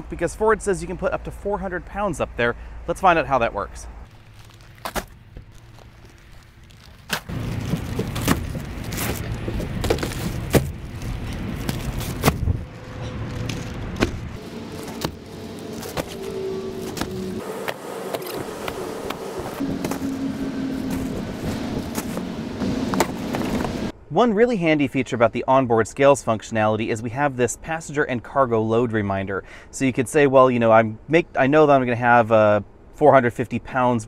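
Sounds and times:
bags sliding into truck: 4.1 - 23.8
plastic bags rustling: 4.1 - 23.8.

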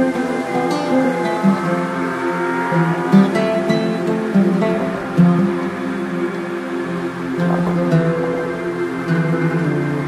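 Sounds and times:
plucked acoustic guitar music: 0.0 - 10.0.

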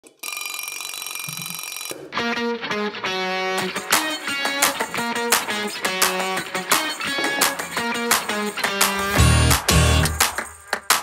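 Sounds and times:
alarm clock ringing: 0.2 - 2.0.

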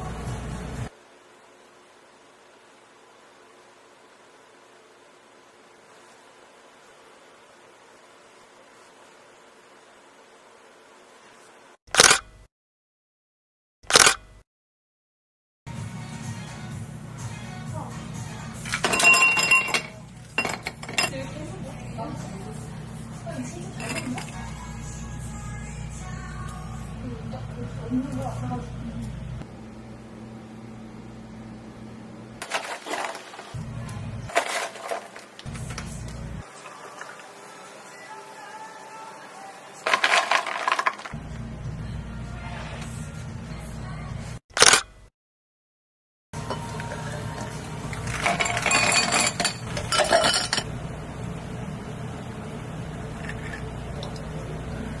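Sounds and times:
background music: 15.7 - 20.2, 46.4 - 48.6
ice cubes clinking in a glass: 18.7 - 21.1, 23.8 - 24.3, 32.4 - 33.5, 34.3 - 35.2, 39.8 - 41.2, 47.9 - 50.6
glass ringing: 18.8 - 21.2, 48.3 - 50.6.

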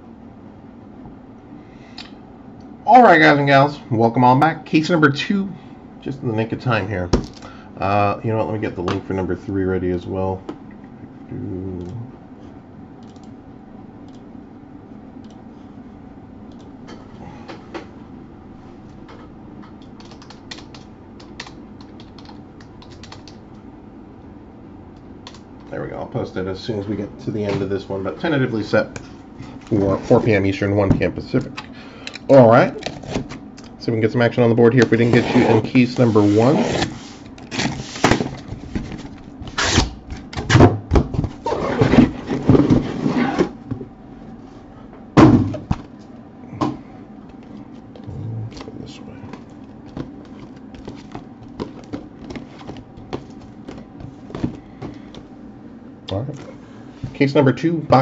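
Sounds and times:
typing on computer keyboard: 19.8 - 23.4
cardboard boxes rubbing and scraping: 34.9 - 38.8, 41.4 - 43.6
box thumping down: 45.2 - 45.8.

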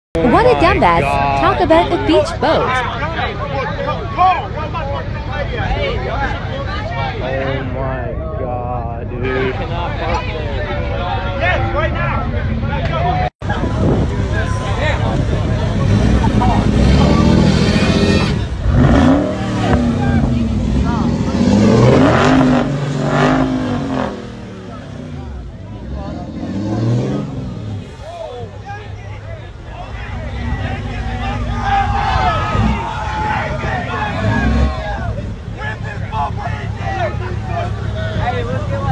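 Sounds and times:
crowd talking and shouting: 0.2 - 38.9
truck engine revving: 11.7 - 38.9.

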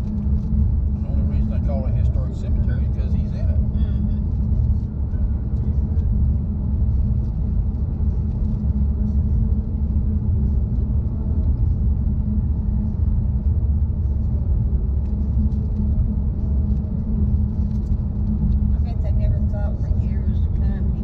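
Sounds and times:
car cabin road and engine rumble: 0.0 - 21.0.

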